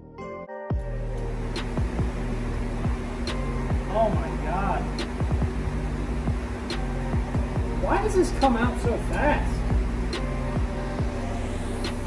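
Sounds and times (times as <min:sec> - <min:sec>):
steady hum: 0:00.7 - 0:12.0.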